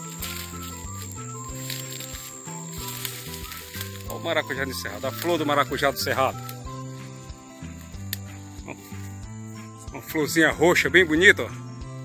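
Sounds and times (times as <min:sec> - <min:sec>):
held notes over bass line: 0:00.0 - 0:12.0.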